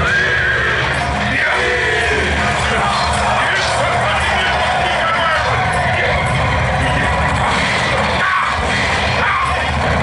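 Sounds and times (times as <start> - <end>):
loud background music: 0.0 - 10.0.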